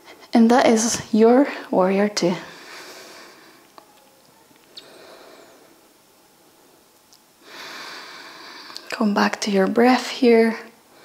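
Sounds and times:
person breathing: 0:02.4 - 0:03.7, 0:04.7 - 0:05.9, 0:07.4 - 0:08.9.

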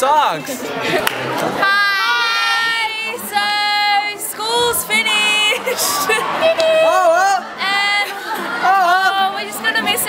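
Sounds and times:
girls singing high notes: 0:01.6 - 0:10.0.

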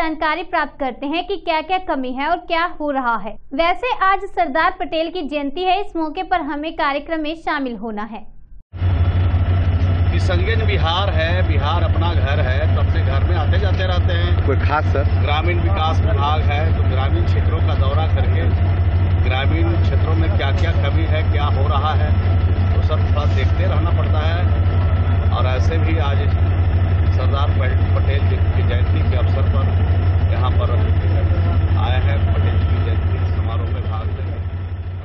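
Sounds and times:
loud low hum: 0:08.3 - 0:35.0
engine idling: 0:08.7 - 0:35.0
man speaking: 0:10.1 - 0:18.6, 0:19.2 - 0:24.6, 0:25.3 - 0:26.4, 0:27.1 - 0:34.5.

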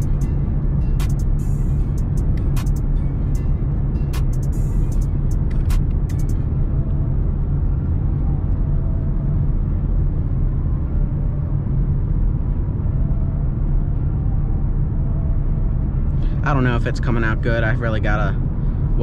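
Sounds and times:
car engine and tyres drone in cabin: 0:00.0 - 0:19.0.

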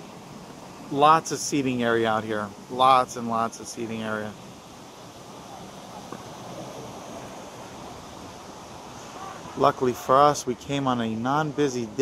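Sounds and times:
outdoor rushing hiss: 0:00.0 - 0:12.0.

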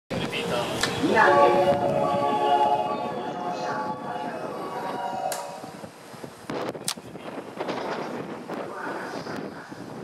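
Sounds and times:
station departure melody: 0:00.4 - 0:06.5.

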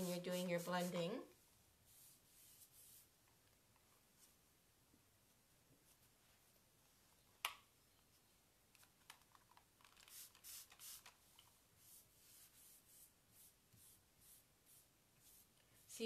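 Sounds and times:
paintbrush scratchy strokes: 0:00.0 - 0:01.2, 0:01.8 - 0:03.2, 0:11.8 - 0:16.0.

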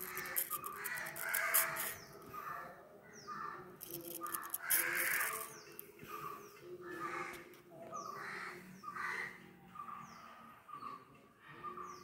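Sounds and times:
razor scraping through hair: 0:00.0 - 0:02.1, 0:03.8 - 0:06.0.

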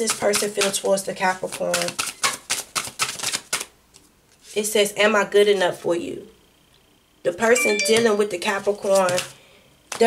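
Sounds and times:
cards being shuffled: 0:01.5 - 0:04.4.

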